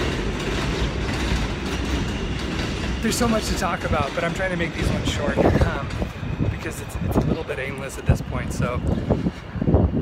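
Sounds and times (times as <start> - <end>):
subway train low rumble: 0.0 - 10.0.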